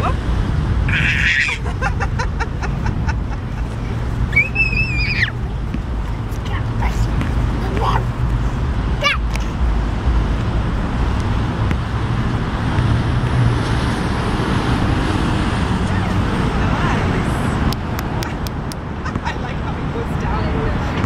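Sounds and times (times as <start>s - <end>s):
loud outdoor background rumble: 0.0s - 21.0s.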